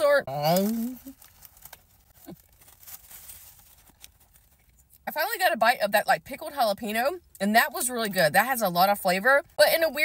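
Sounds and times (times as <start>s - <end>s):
chewing sandwich: 0.3s - 5.0s.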